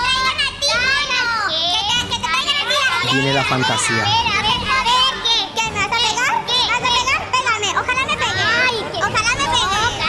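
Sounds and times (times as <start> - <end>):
high-pitched voices arguing: 0.0 - 10.0.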